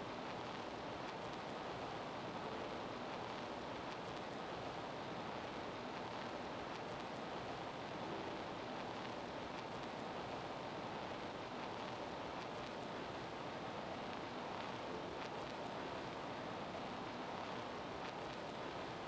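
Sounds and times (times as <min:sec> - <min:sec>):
microphone background hiss: 0:00.0 - 0:19.0.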